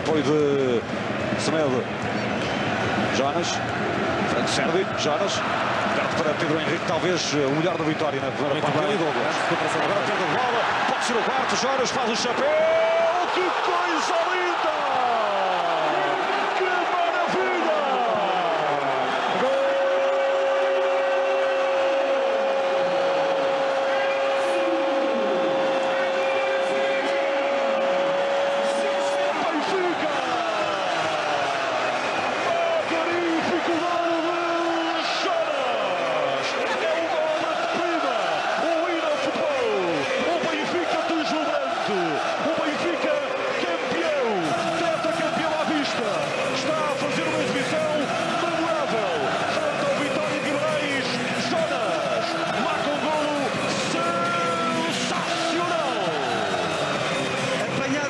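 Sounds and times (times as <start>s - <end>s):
stadium crowd cheering and singing: 0.0s - 58.0s.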